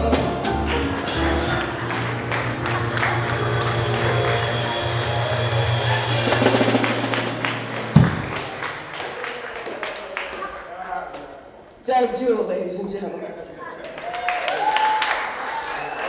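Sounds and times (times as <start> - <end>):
live band holding closing chord: 0.0 - 9.4
sharp band accent hit: 3.4 - 8.9.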